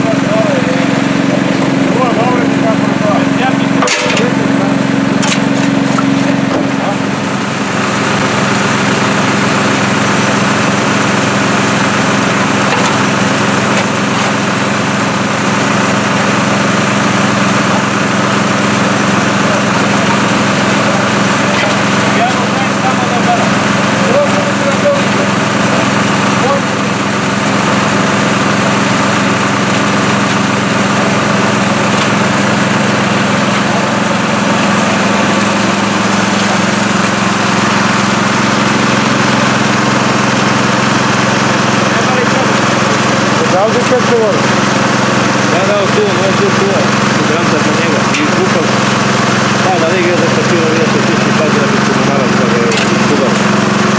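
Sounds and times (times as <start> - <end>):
water pump engine running: 0.0 - 53.9.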